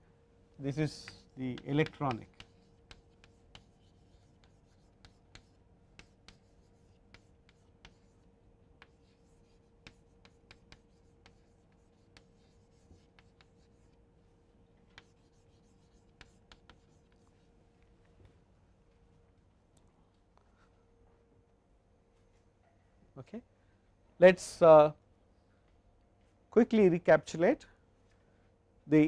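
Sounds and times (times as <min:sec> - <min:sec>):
faint steady hum: 0:00.0 - 0:29.0
chalk tapping and scratching: 0:00.7 - 0:14.0, 0:14.8 - 0:17.5.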